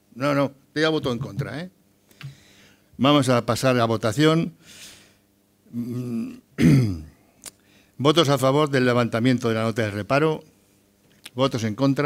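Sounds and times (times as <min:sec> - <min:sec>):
man clearing his throat: 0:05.7 - 0:07.2.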